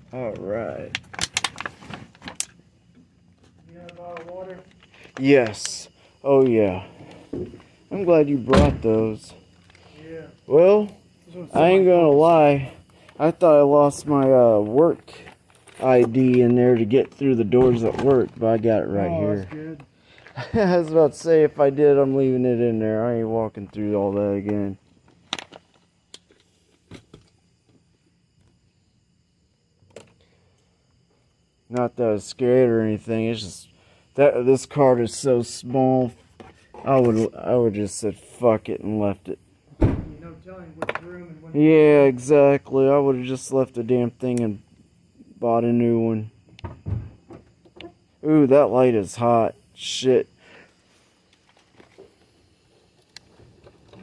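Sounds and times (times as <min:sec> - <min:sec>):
handling clicks and knocks: 0:00.3 - 0:02.6.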